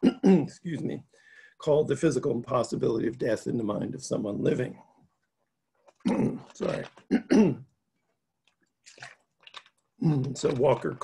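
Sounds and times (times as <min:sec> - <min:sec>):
man clearing his throat: 0:00.0 - 0:00.6, 0:07.1 - 0:07.7.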